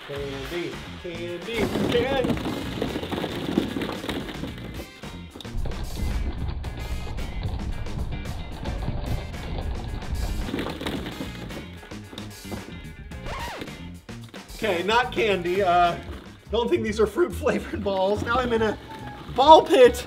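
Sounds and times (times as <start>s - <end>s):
plastic balls clattering: 0.0s - 16.5s, 17.9s - 20.0s
background music: 0.0s - 20.0s.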